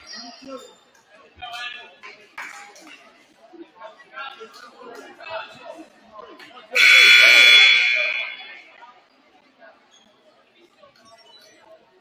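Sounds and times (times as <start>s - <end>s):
crowd chatter: 0.0s - 12.0s
scoreboard horn: 6.8s - 8.6s.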